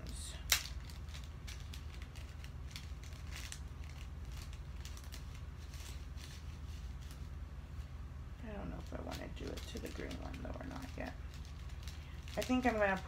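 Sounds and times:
steady low hum: 0:00.0 - 0:13.0
paper packet crinkling: 0:00.1 - 0:07.3, 0:08.5 - 0:13.0.

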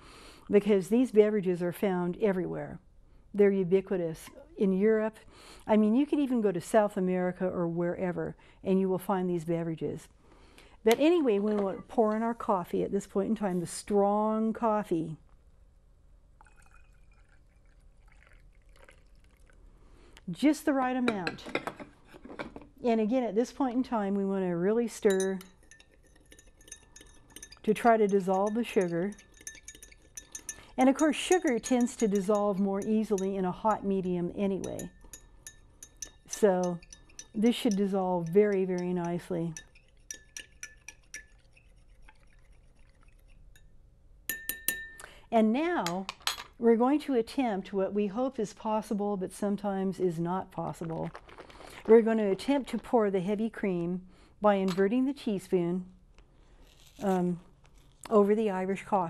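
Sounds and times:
coffee trickling into glass: 0:16.4 - 0:19.6, 0:25.1 - 0:33.3
teaspoon stirring in glass: 0:16.4 - 0:19.6, 0:25.0 - 0:43.7, 0:44.3 - 0:45.0
spoon tapping against glass: 0:25.0 - 0:33.4, 0:34.6 - 0:42.3, 0:44.3 - 0:45.1.

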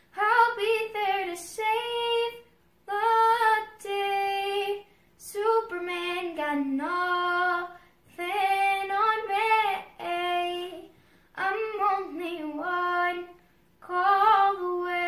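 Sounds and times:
girl singing unaccompanied: 0:00.0 - 0:15.0
breaths: 0:04.8 - 0:05.2, 0:07.7 - 0:08.1, 0:10.9 - 0:11.4, 0:13.4 - 0:13.8.

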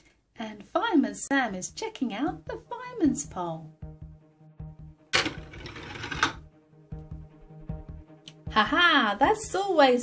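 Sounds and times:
background music: 0:00.5 - 0:10.0.

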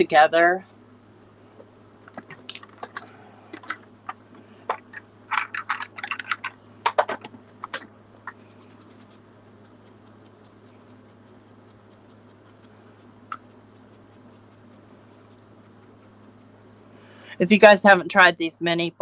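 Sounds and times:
tool ticking against paper: 0:08.5 - 0:17.1.

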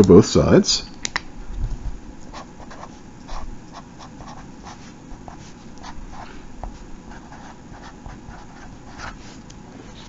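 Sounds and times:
marker scratching on paper: 0:02.3 - 0:09.4.

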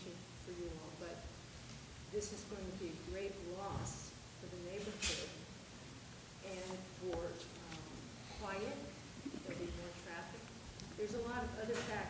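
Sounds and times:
woman speaking quietly: 0:00.0 - 0:01.2, 0:02.1 - 0:05.5, 0:06.4 - 0:10.4, 0:11.0 - 0:12.0.

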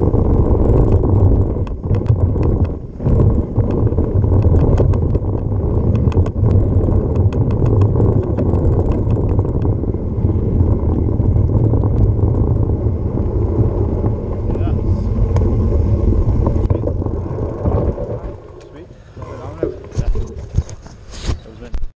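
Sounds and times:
bike rattling over bumps: 0:00.0 - 0:21.9
bike tyres rumbling on dirt: 0:00.0 - 0:21.9
wind on microphone: 0:00.0 - 0:21.9.

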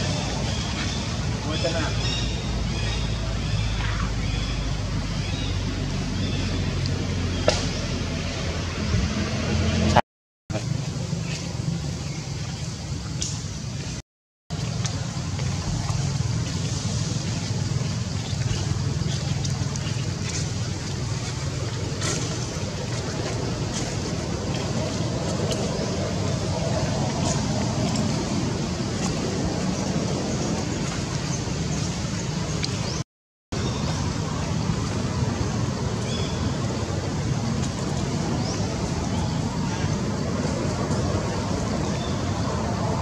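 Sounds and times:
outdoor rumble and hiss: 0:00.0 - 0:33.0, 0:33.6 - 0:43.0.

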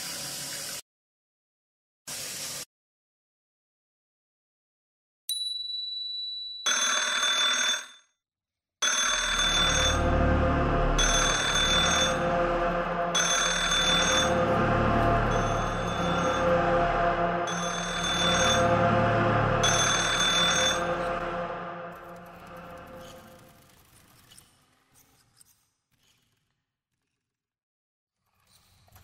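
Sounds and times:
bell-like ringing: 0:08.8 - 0:23.7
low music bed: 0:09.2 - 0:23.8.

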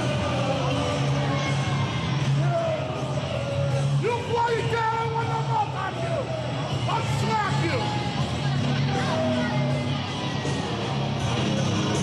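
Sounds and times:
voices yelling and shouting: 0:00.0 - 0:11.0
faint rock music: 0:00.0 - 0:12.0.

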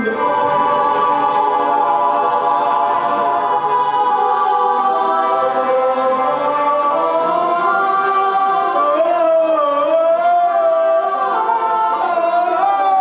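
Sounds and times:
synthesizer choir-like chord: 0:00.0 - 0:13.0.

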